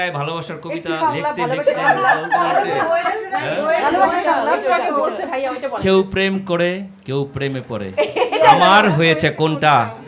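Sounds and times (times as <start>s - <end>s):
overlapping conversational chatter: 0.0s - 10.0s.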